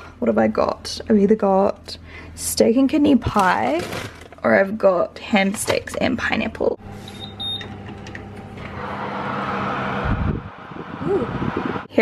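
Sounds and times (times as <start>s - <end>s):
oven fan humming: 6.7s - 12.0s
oven button beeps: 7.0s - 7.8s.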